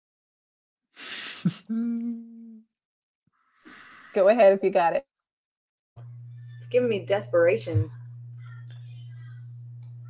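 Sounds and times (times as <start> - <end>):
person humming: 1.3 - 2.7.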